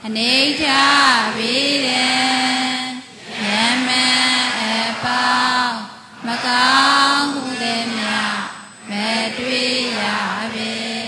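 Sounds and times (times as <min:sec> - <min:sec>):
person chanting in held notes: 0:00.0 - 0:11.0.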